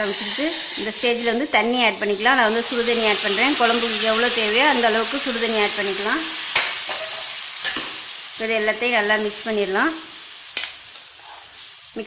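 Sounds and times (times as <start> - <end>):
liquid sizzling in hot oil: 0.0 - 12.0
spoon scraping pan: 6.5 - 8.1.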